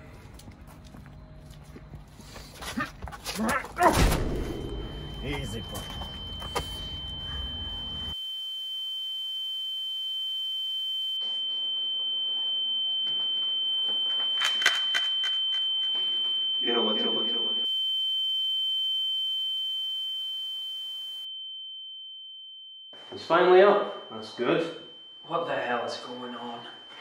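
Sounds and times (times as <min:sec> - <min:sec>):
high-pitched ringing tone: 0:03.9 - 0:27.0.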